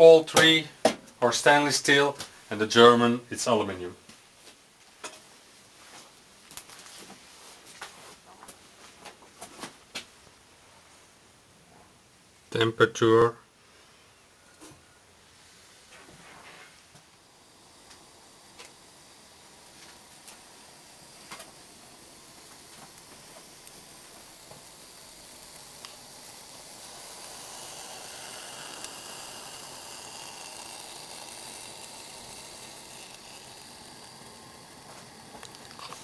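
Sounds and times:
alcohol burner hissing: 0:00.0 - 0:03.6, 0:10.3 - 0:36.0.

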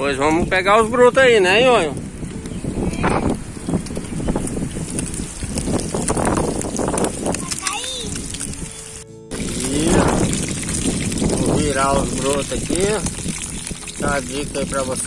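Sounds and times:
fish frying in hot oil: 0:04.3 - 0:15.0.

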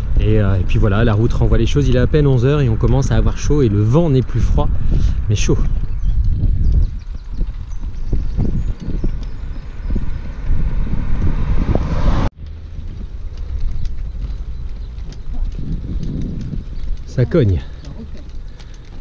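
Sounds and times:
quieter steady rumble: 0:00.0 - 0:19.0
wind rumbling on microphone: 0:00.0 - 0:19.0.

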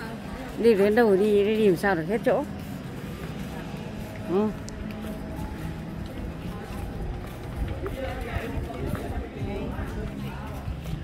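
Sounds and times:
people talking indistinctly: 0:00.0 - 0:11.0
walking and camera handling noise: 0:00.5 - 0:11.0.

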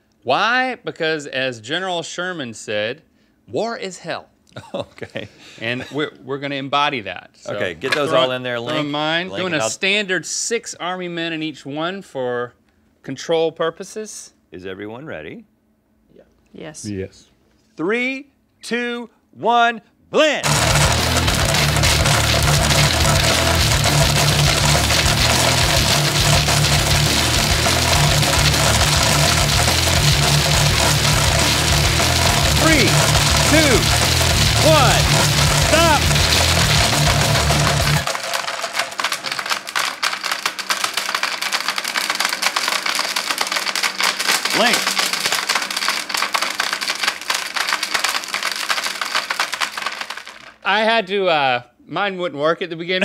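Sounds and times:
blenders grinding plastic: 0:09.4 - 0:09.7, 0:20.4 - 0:50.6
plastic bits clattering: 0:20.4 - 0:50.6.

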